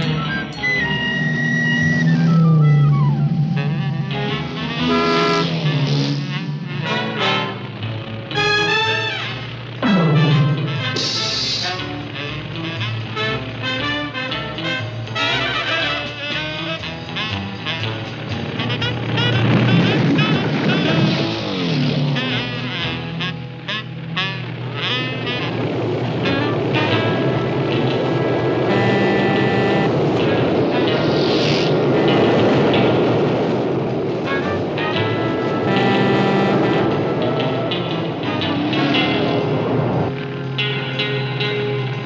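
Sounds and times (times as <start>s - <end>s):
falling pitch slide: 0.0s - 12.2s, 18.5s - 40.5s
cartoon orchestral music: 0.0s - 42.0s
small motorbike engine running: 15.4s - 30.7s, 35.1s - 40.9s.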